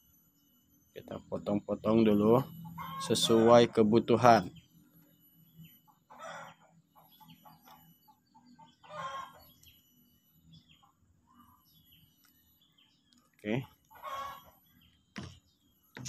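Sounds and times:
small bird chirps: 4.2s - 16.0s
fowl-like clucking calls: 6.1s - 7.7s, 8.8s - 9.4s, 13.9s - 14.5s.

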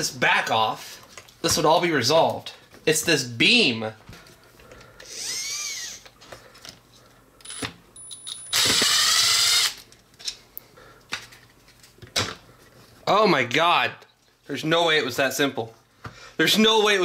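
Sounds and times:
cordless driver whirring: 5.0s - 6.1s, 8.5s - 9.8s.

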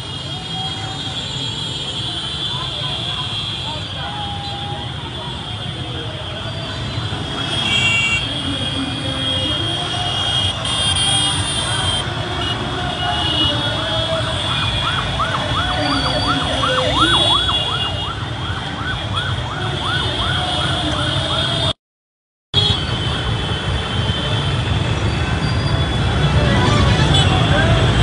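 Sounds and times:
rumble of motorcycles and cars: 0.0s - 21.8s, 22.6s - 28.0s
siren yelping: 14.5s - 21.4s.

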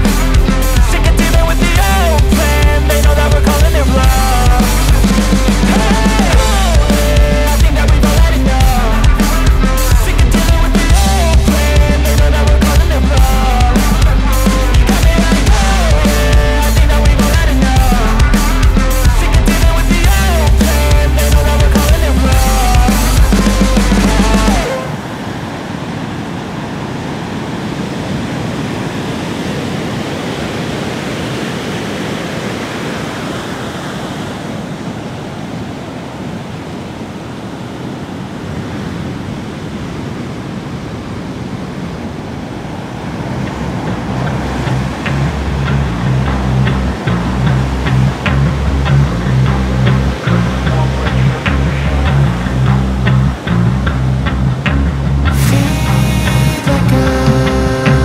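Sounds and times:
music with bass and percussion: 0.0s - 24.7s, 44.4s - 58.0s
sea waves and surf: 0.0s - 58.0s.

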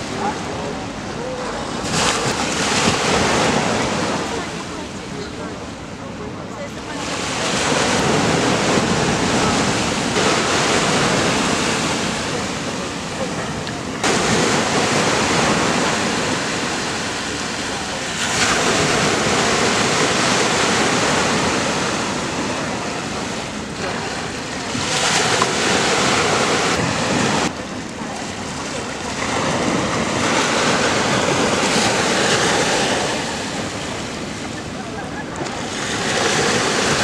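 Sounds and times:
sea surf washing: 0.0s - 37.0s.

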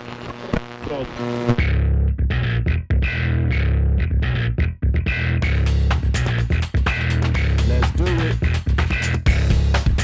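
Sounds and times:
electronic music with heavy bass: 0.7s - 10.0s.

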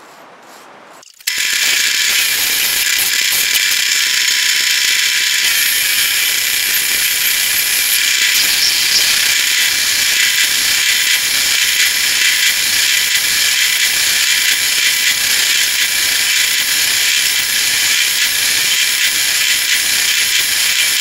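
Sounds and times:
thin steady whine: 1.1s - 21.0s
metal lathe cutting: 1.2s - 21.0s.

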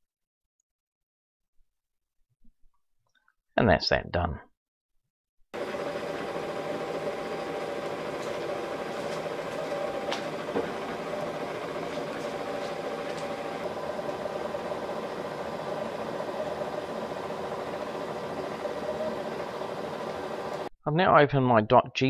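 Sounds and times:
machine mechanical hum: 5.6s - 20.7s.

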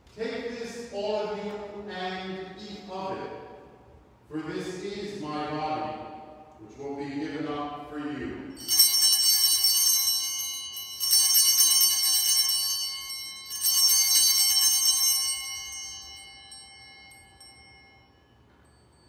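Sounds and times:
altar bells jangling: 8.5s - 19.0s.

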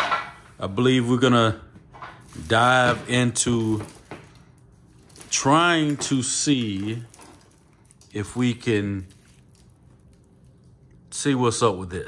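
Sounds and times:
plastic wiring loom handling noise: 2.0s - 4.4s.

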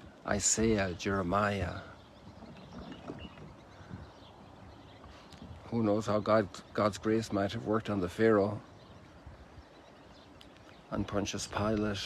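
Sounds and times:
water lapping around boat: 0.0s - 12.0s.

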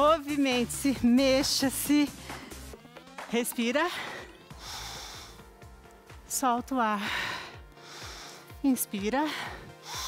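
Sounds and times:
faint background music: 0.0s - 10.0s
breath through nose: 4.4s - 5.5s, 7.1s - 8.5s, 9.5s - 10.0s.

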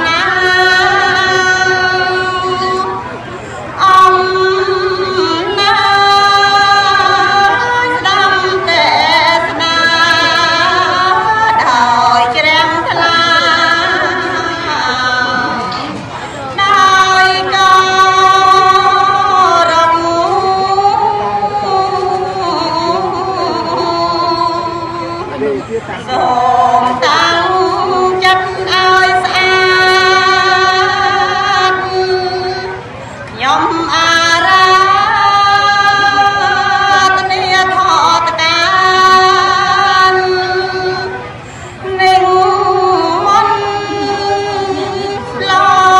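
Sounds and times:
woman chanting: 0.0s - 45.9s
breath: 3.3s - 3.7s, 33.0s - 33.3s, 41.4s - 41.8s.

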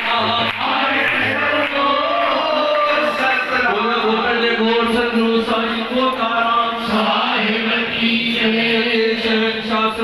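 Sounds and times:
voices chanting in unison: 6.8s - 10.0s.

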